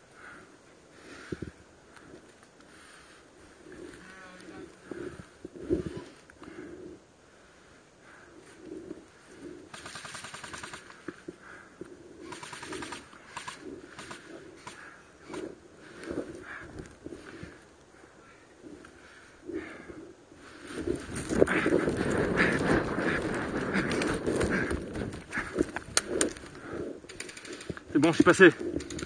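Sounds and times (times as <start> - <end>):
airsoft gun bursts: 9.7 - 11.0, 12.2 - 14.8.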